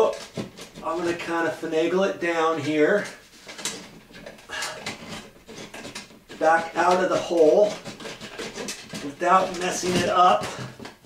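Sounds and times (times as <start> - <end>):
light housing scraping drywall: 0.0 - 11.0.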